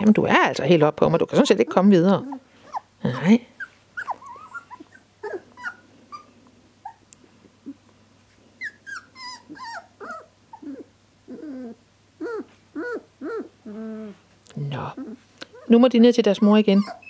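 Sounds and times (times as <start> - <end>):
puppies whimpering: 1.3 - 7.0, 8.6 - 14.2, 14.8 - 17.0.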